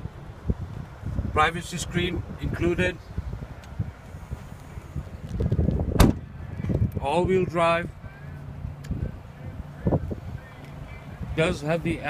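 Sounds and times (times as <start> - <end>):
liftgate latching bang: 5.9 - 6.2.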